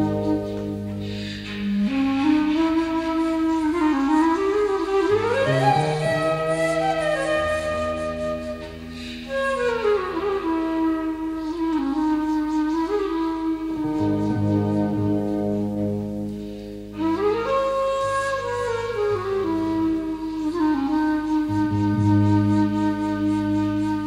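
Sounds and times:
slow flute melody: 0:00.0 - 0:24.0.

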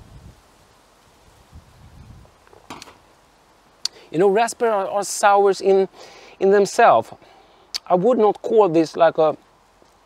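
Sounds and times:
glass set down on metal: 0:02.6 - 0:03.0.

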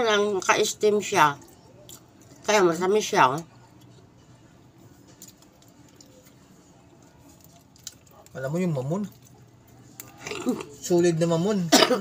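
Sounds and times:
chewing: 0:01.4 - 0:02.4, 0:05.1 - 0:10.8.

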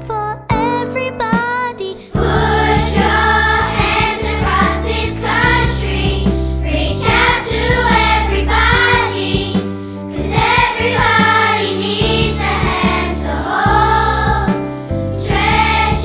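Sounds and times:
children's choir singing: 0:02.2 - 0:16.0
instrumental backing with bass: 0:02.2 - 0:16.0.

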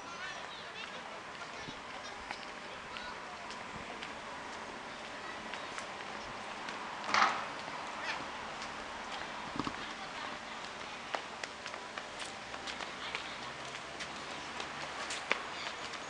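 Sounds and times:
footsteps on paved path: 0:00.0 - 0:16.0
outdoor background hiss: 0:00.0 - 0:16.0.

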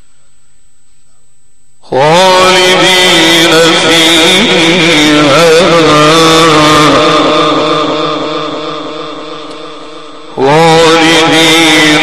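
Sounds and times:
man chanting through a microphone: 0:01.8 - 0:12.0.

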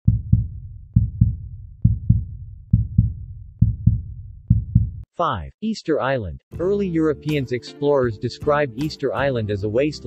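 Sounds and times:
heartbeat thumps: 0:00.1 - 0:05.1.

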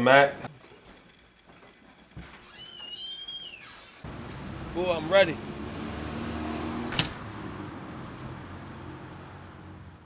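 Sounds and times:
door hinges squeaking: 0:02.2 - 0:04.1, 0:06.8 - 0:07.2.

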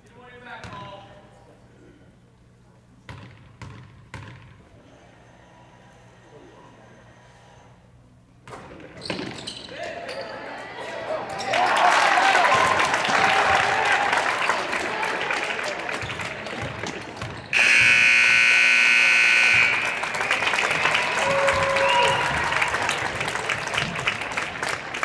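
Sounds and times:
crowd cheering and clapping: 0:11.0 - 0:17.1, 0:19.2 - 0:25.0
scoreboard horn buzz: 0:17.5 - 0:22.7.

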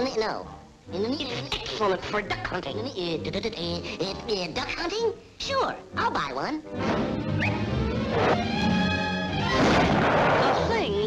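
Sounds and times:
orchestral cartoon music: 0:00.0 - 0:10.8
cartoon shotgun blast: 0:09.4 - 0:10.6.

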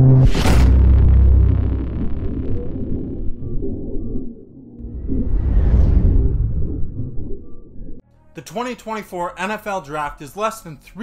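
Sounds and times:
deep rumbling drone: 0:00.0 - 0:08.0.

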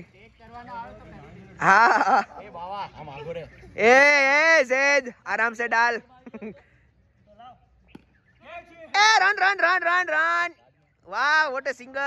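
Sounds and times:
faint distant calls: 0:02.4 - 0:12.0
man shouting loudly: 0:08.5 - 0:12.0.

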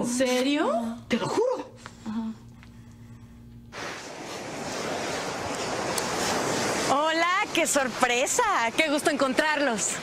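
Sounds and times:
ocean waves breaking on beach: 0:03.8 - 0:10.0.

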